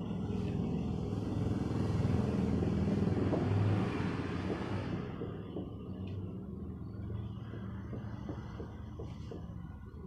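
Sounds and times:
passing vehicle engine rumble: 0.0s - 10.0s
steady low background rumble: 0.0s - 10.0s.

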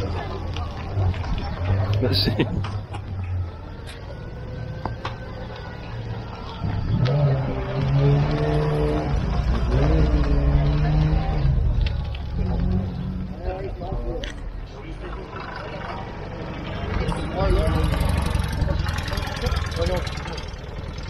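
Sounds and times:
car engine driving past: 0.8s - 13.6s.

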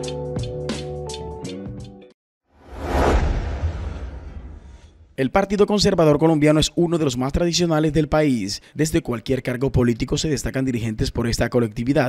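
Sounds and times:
whoosh with deep rumble: 2.6s - 5.2s.

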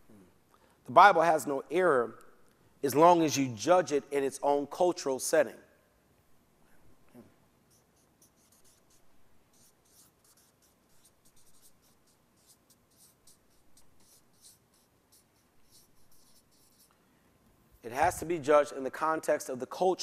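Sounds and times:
marker scratching while writing: 7.7s - 16.9s.

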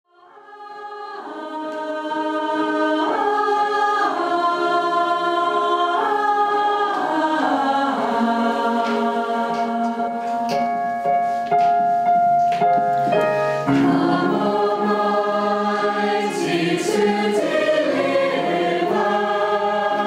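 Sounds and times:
choir singing held chords: 0.2s - 10.5s, 13.3s - 20.0s.

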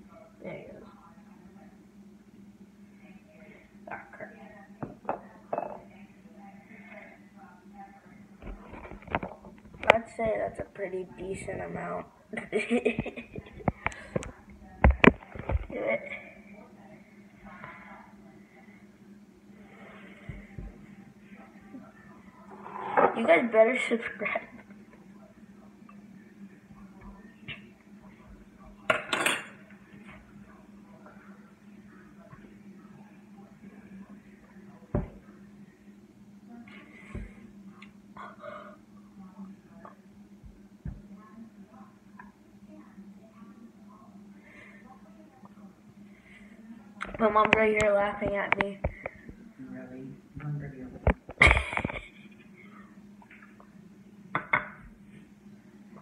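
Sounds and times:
faint indistinct talk: 0.0s - 56.0s.

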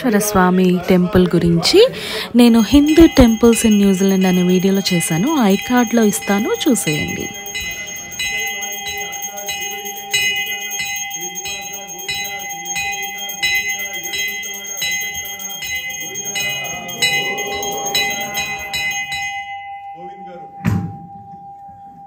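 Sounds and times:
hand bell ringing rapidly: 2.4s - 19.9s.

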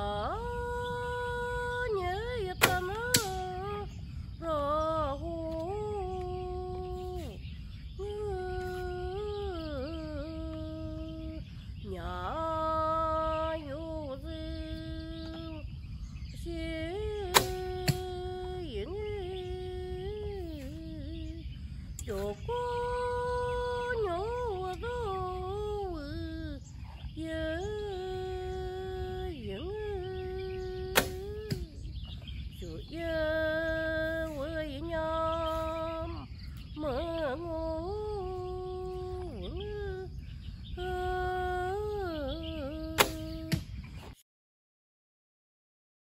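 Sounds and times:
person singing long sliding notes: 0.0s - 15.7s, 16.3s - 32.0s, 32.6s - 43.7s
person humming slow tune: 0.0s - 43.7s
sharp click: 17.3s - 18.1s, 43.0s - 43.7s.

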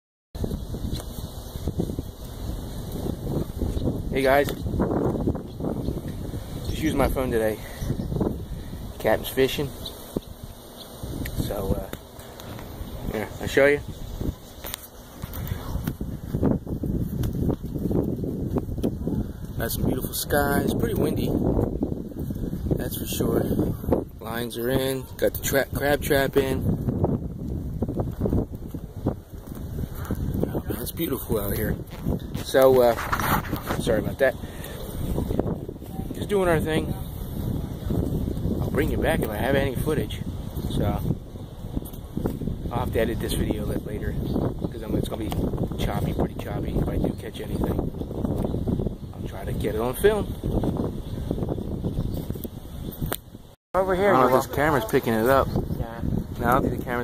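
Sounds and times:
wind buffeting microphone: 0.4s - 57.0s.

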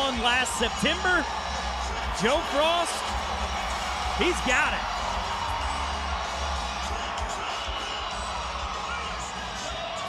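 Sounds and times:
crowd cheering: 0.0s - 10.0s
music with heavy bass: 0.7s - 10.0s.

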